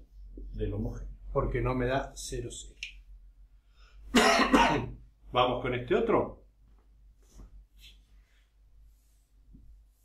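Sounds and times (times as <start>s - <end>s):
man coughing: 4.1s - 5.0s.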